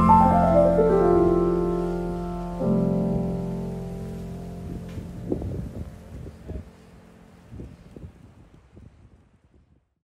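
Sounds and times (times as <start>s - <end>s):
wind buffeting microphone: 3.2s - 10.0s.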